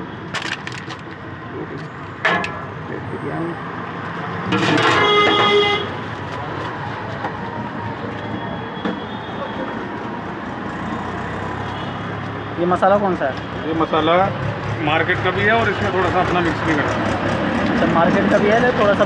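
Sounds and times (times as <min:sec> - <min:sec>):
roadside traffic noise: 0:00.0 - 0:19.0
vehicle horn honking: 0:04.7 - 0:06.0.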